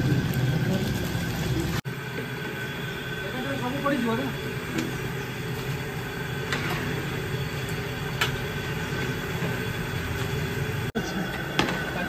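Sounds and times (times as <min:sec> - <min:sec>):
gas burner roaring: 0:00.0 - 0:12.0.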